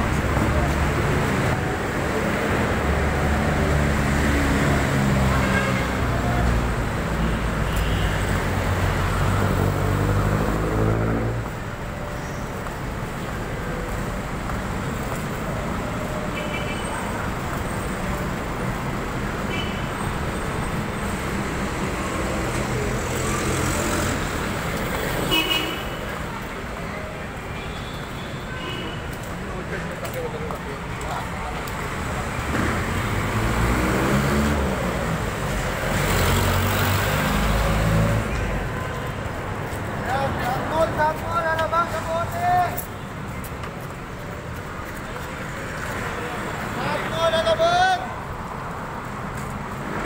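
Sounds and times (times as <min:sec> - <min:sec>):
road traffic noise: 0:00.0 - 0:50.0.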